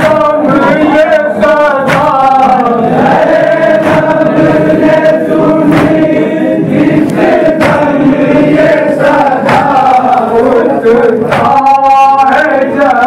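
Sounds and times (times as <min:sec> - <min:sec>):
group chanting in unison: 0:00.0 - 0:13.0.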